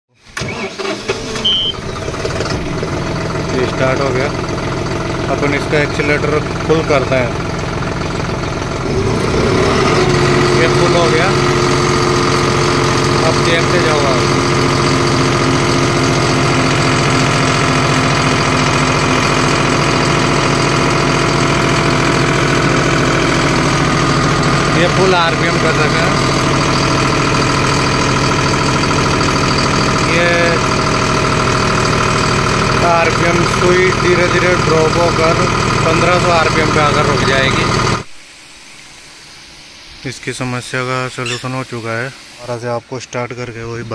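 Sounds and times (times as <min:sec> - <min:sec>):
diesel tractor engine starting: 0:00.1 - 0:38.1, 0:40.0 - 0:43.9
short high beep: 0:01.4 - 0:02.0, 0:41.2 - 0:41.8.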